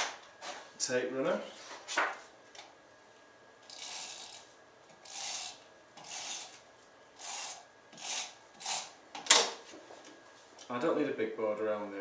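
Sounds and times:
tape runner rasping on paper: 3.7 - 6.6, 7.2 - 9.0.

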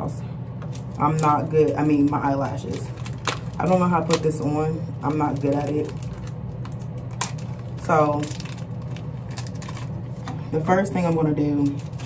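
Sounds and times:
steady low hum: 0.0 - 12.0
plastic packet crinkling torn open: 0.6 - 10.3, 11.0 - 12.0.

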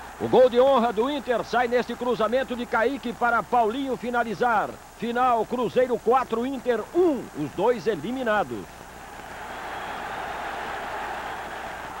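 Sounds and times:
stadium crowd roar: 0.0 - 4.1, 8.5 - 12.0.

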